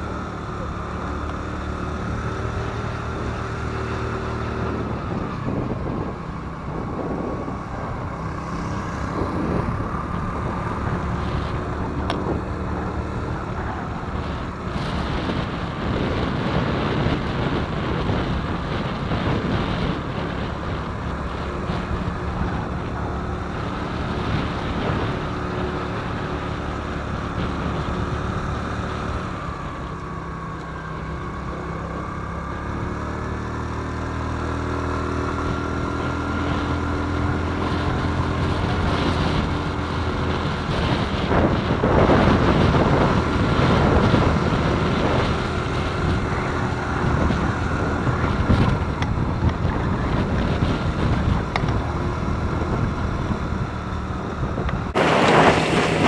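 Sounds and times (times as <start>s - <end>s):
scooter engine running: 0.0s - 56.0s
wind buffeting microphone: 0.0s - 56.0s.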